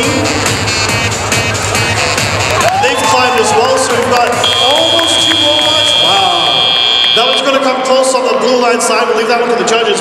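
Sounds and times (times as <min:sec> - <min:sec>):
arena crowd noise: 0:00.0 - 0:10.0
voices: 0:02.8 - 0:08.2
buzzer high-pitched tone: 0:04.4 - 0:07.6.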